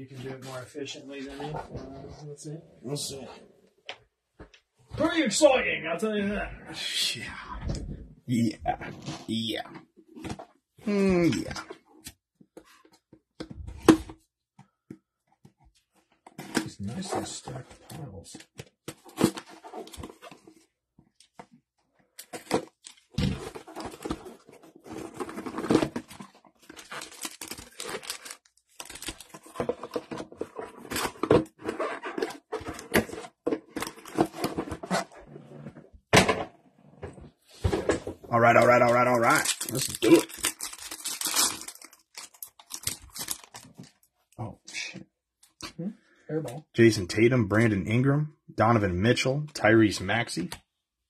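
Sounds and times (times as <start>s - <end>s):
cardboard tearing: 23.1s - 30.0s, 39.1s - 43.7s
packaging crinkling: 25.0s - 30.0s, 38.6s - 44.0s.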